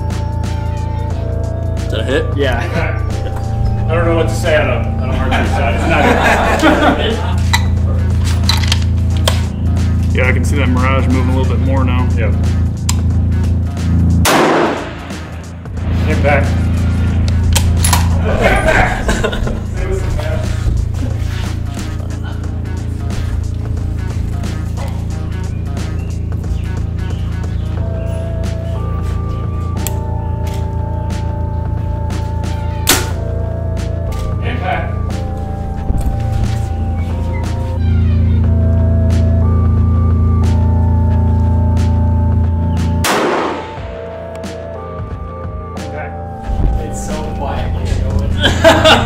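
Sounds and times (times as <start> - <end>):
music with steady bass: 0.0 - 49.0
sharp crack: 14.2 - 16.2, 17.2 - 18.2, 32.8 - 33.2, 43.0 - 44.5
loud bang: 14.2 - 19.6, 43.0 - 44.1.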